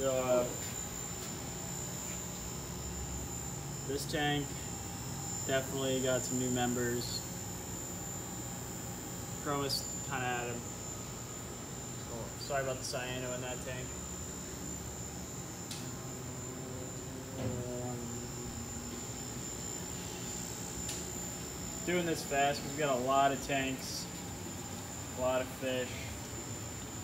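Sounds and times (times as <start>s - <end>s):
aquarium pumps humming: 0.0s - 27.0s
faint high whine: 0.0s - 27.0s.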